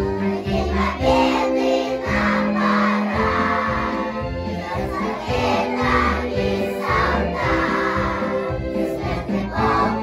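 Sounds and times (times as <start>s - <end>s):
instrumental accompaniment with beat: 0.0s - 10.0s
children singing in unison: 0.2s - 10.0s.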